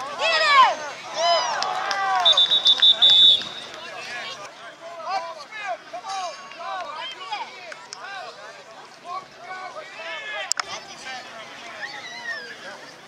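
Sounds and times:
people shouting: 0:00.0 - 0:04.3
referee whistle trilling blast: 0:02.2 - 0:03.8.

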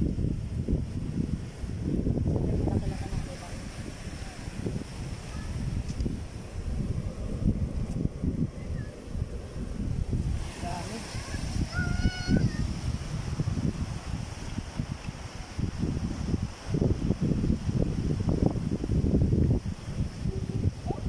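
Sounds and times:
wind buffeting microphone: 0:00.0 - 0:21.0.

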